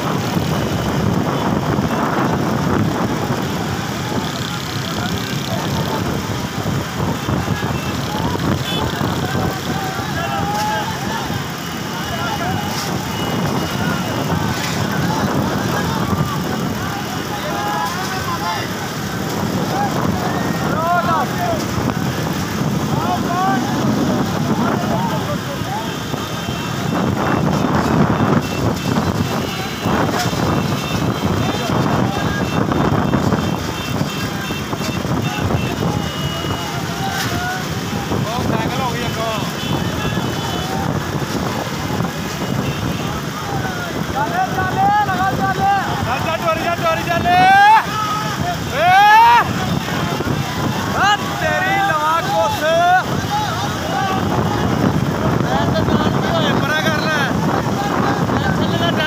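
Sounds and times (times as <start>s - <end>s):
motorcycle engines running: 0.0s - 59.0s
men shouting: 7.2s - 27.4s, 29.4s - 59.0s.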